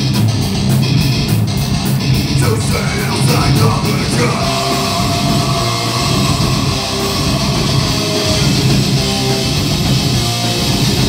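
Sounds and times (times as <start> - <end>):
bass guitar: 0.0 - 11.0
distorted electric guitar: 0.0 - 11.0
drum kit: 0.0 - 11.0.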